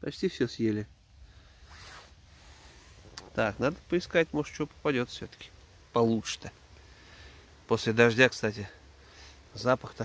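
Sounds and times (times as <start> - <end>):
rustling swish of movement: 1.6 - 3.4.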